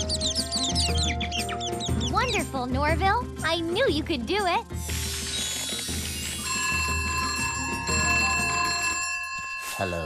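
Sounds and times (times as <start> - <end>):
cartoon background music: 0.0 - 9.0
bell-like ringing: 6.4 - 10.0.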